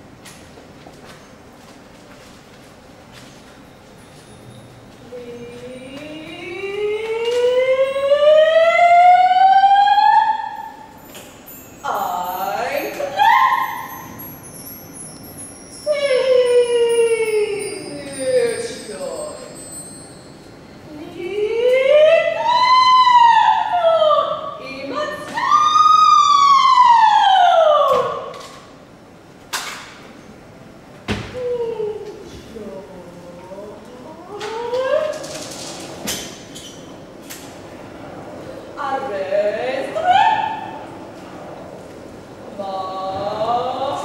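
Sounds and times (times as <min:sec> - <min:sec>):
woman singing wavering tone: 0:05.0 - 0:14.7, 0:15.4 - 0:20.2
woman singing a long note: 0:05.1 - 0:10.6.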